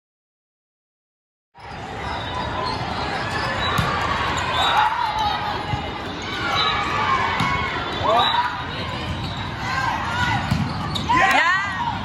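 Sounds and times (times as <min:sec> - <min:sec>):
balls being hit and bouncing: 0:03.3 - 0:06.2, 0:07.3 - 0:08.2, 0:08.9 - 0:11.5.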